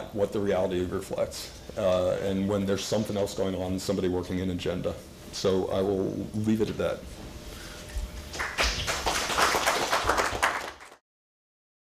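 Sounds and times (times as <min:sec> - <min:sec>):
audience applauding: 0:08.3 - 0:11.0.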